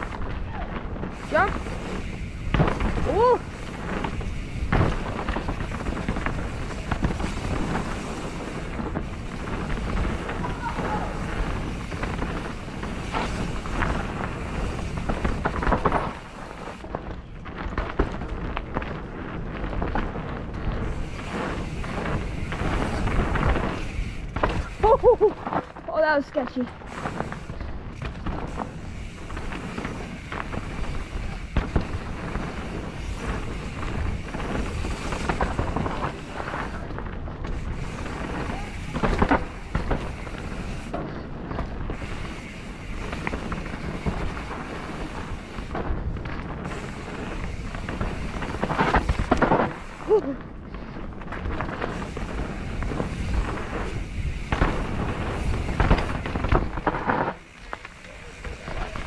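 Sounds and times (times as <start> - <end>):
bike rattling over bumps: 0.0 - 59.0
tyres on dirt: 0.0 - 59.0
wind buffeting microphone: 0.0 - 59.0.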